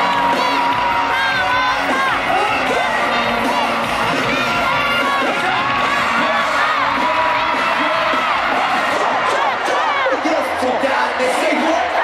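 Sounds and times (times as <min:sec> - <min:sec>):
loud live concert music: 0:00.0 - 0:12.0
stadium crowd screaming and cheering: 0:00.0 - 0:12.0.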